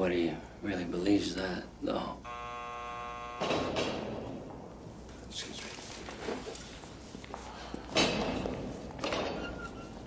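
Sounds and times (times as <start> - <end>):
prison door buzzer: 2.2 - 4.2
heavy door opening: 3.4 - 4.4.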